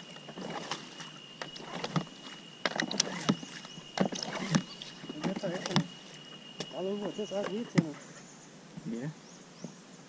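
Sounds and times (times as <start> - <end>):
water lapping: 0.0 - 8.1
faint high whine: 0.0 - 10.0.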